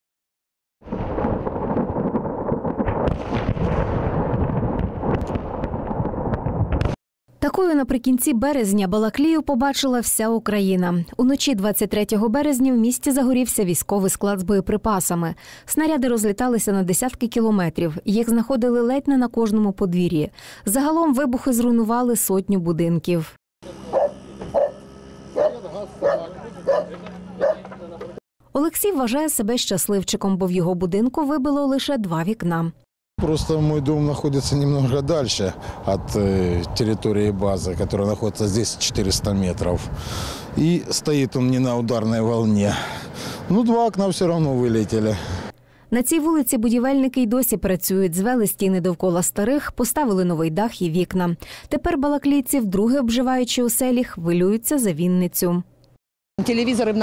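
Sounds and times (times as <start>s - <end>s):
artillery shells detonating: 0.8s - 7.0s
dog barking: 23.9s - 24.8s, 25.4s - 27.7s.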